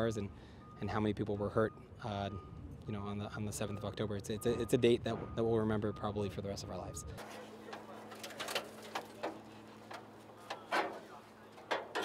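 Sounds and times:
low steady hum: 6.7 - 12.0
clicks and rustles of wreckage: 7.2 - 12.0.

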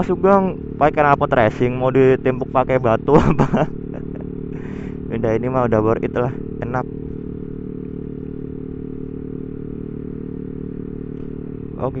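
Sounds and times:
scooter engine cruising: 0.0 - 12.0.

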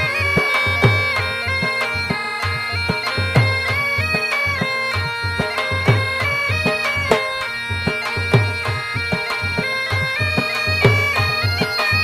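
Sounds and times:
bagpipes playing a melody: 0.0 - 12.0
drum beating: 0.0 - 12.0.

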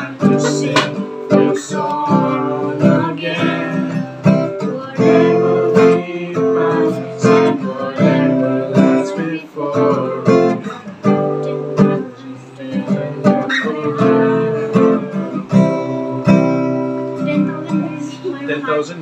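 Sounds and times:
person singing: 0.0 - 16.3
acoustic guitar strumming: 0.0 - 19.0.

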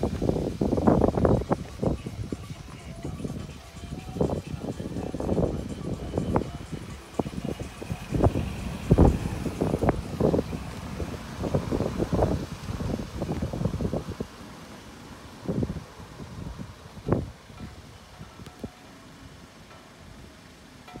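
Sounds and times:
wind buffeting microphone: 0.0 - 19.4.

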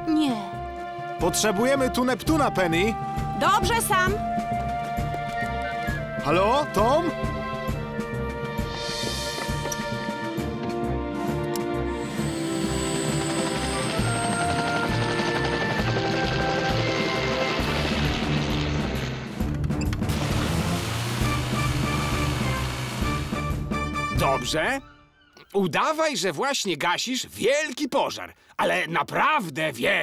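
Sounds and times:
action music: 0.6 - 25.5
helicopter rotor and engine: 11.8 - 17.7.

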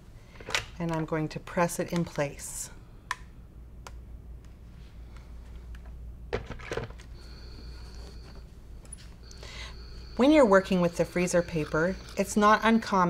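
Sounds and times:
steady low hum: 0.0 - 13.0
faint high whine: 7.2 - 13.0.

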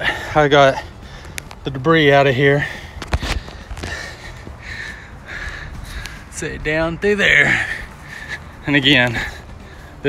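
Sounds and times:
breathing close to microphone: 0.0 - 1.6, 2.5 - 6.4, 7.4 - 10.0
footsteps on dirt and leaves: 0.9 - 10.0.

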